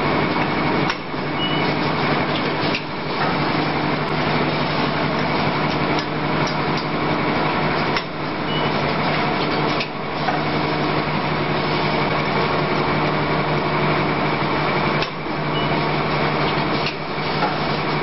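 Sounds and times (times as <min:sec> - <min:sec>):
packing machine drone: 0:00.0 - 0:18.0.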